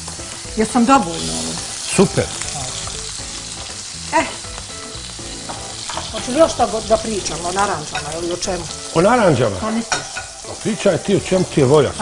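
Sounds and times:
chicken sizzling in a frying pan: 0:00.0 - 0:12.0.

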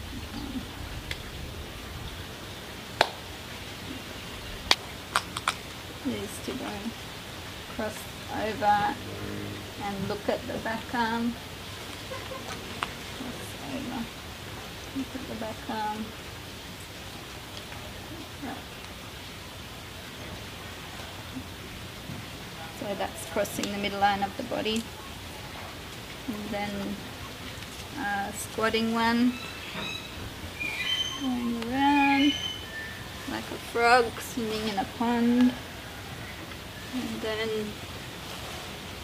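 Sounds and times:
steady background hiss: 0:00.0 - 0:39.0.

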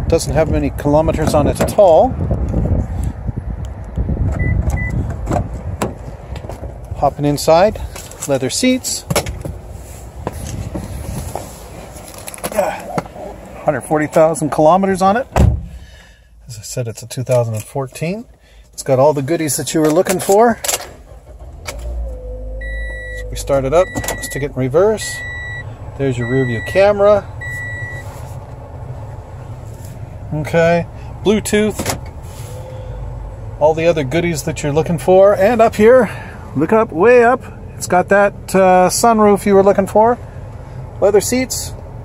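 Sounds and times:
car engine idling: 0:20.4 - 0:42.0
low rumble: 0:21.0 - 0:35.1.

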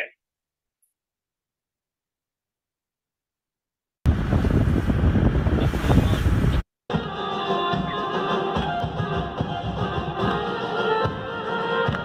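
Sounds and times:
loud rushing wind-like noise: 0:04.1 - 0:06.6
music: 0:06.9 - 0:12.0.

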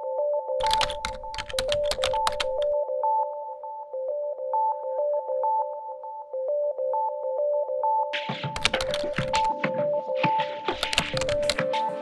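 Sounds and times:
light electronic music: 0:00.0 - 0:12.0
keyboard typing clicks: 0:00.6 - 0:02.8, 0:08.6 - 0:09.6, 0:10.7 - 0:11.8.

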